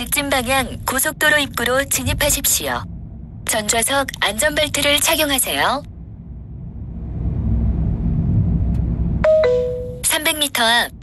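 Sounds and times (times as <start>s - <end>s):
moving car rumble: 0.0s - 11.0s
two-note descending chime: 9.2s - 10.0s.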